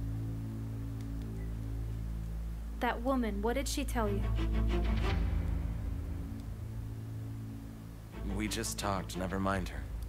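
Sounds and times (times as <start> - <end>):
low orchestral drone: 4.0 - 10.0.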